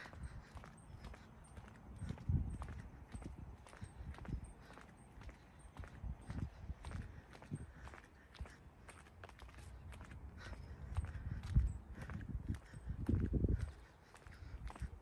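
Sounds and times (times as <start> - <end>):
footsteps on concrete: 0.0 - 15.0.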